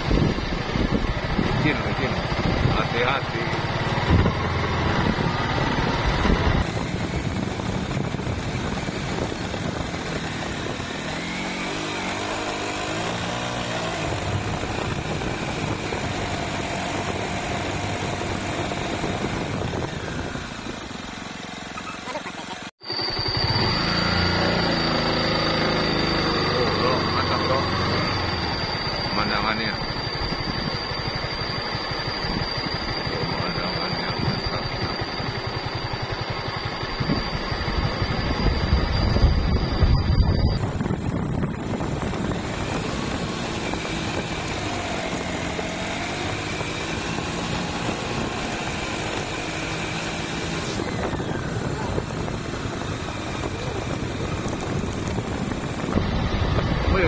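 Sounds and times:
high-pitched whine: 0.0 - 57.0
small motorcycle engine revving: 0.0 - 57.0.

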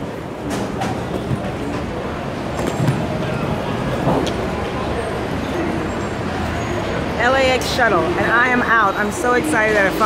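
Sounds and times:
faint voices: 0.0 - 10.0
road traffic noise: 0.0 - 10.0.

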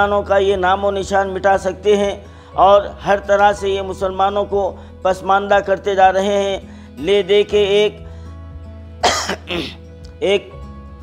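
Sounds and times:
quiet background music: 0.0 - 11.0
man coughing: 9.0 - 9.9.

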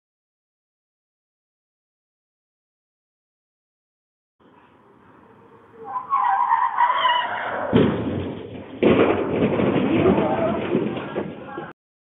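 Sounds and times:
voices: 4.7 - 7.8, 9.8 - 11.8.

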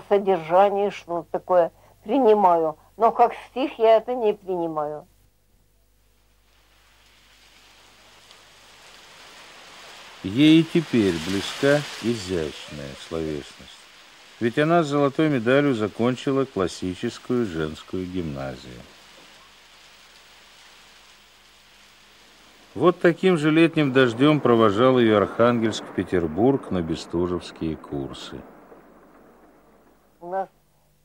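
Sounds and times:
steady rain: 5.1 - 31.0.

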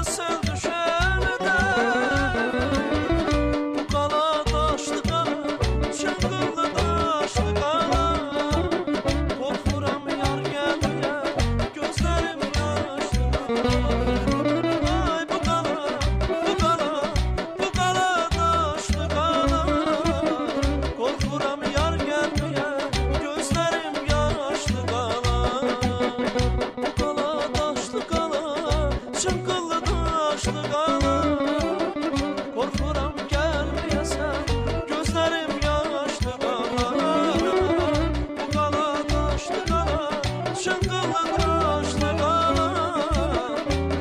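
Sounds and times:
man singing ornamented melody: 0.0 - 3.2, 3.8 - 26.3, 27.0 - 44.0
button accordion: 0.0 - 44.0
low drum beats: 0.0 - 44.0.

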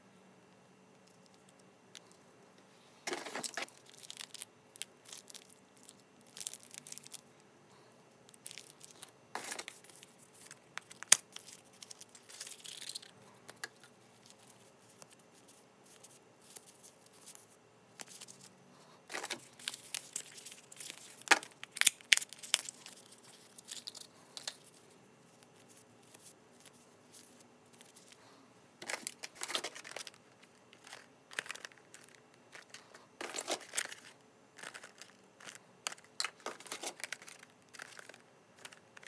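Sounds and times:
tape rolls rustling and crinkling: 3.0 - 7.2, 8.3 - 18.5, 19.1 - 28.2, 28.8 - 39.0.

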